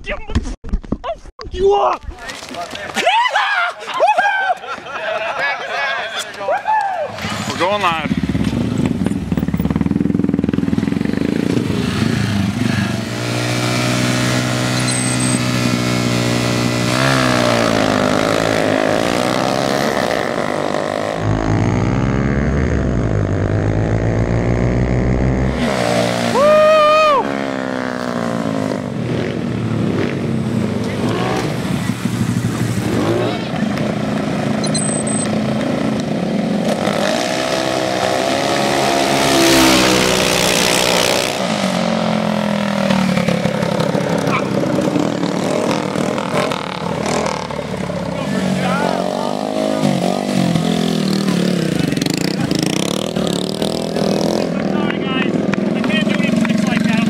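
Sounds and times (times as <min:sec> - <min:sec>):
loud shout: 0:02.9 - 0:07.5, 0:26.2 - 0:27.4
small engines revving: 0:07.1 - 0:57.0.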